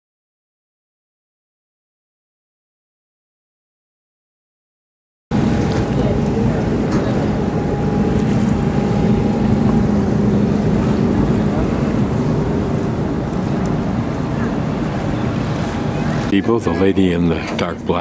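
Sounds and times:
wind rumbling on microphone: 0:05.3 - 0:16.5
ferry engines humming: 0:05.3 - 0:18.0.

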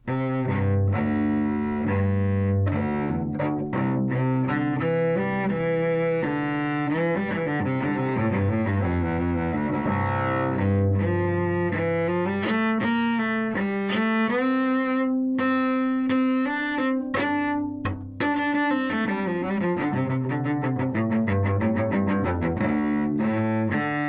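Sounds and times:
bowed cello melody: 0:00.0 - 0:24.0.

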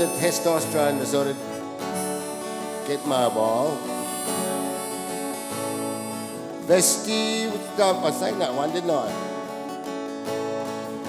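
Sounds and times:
acoustic guitars strumming chords: 0:00.0 - 0:11.0.

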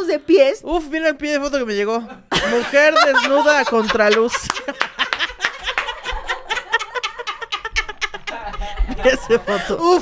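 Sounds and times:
women laughing hard: 0:02.3 - 0:10.0.

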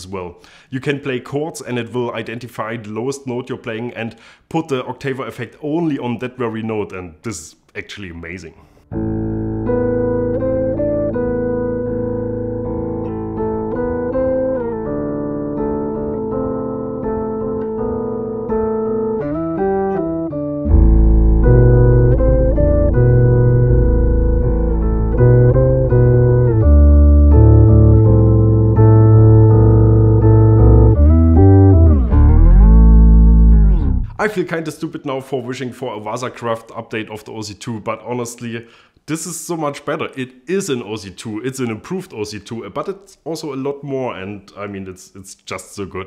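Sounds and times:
electric bass playing chords: 0:08.9 - 0:34.2
heavy low octave bass: 0:20.6 - 0:34.2.

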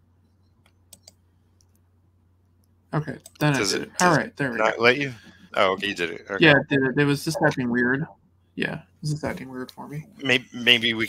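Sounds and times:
low steady hum: 0:00.0 - 0:11.0
faint computer mouse clicks: 0:00.5 - 0:01.8
person speaking: 0:03.0 - 0:11.0.

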